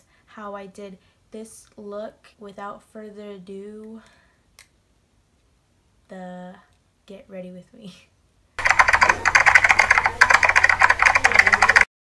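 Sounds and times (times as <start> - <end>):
rapid sharp clicks: 8.6 - 11.9.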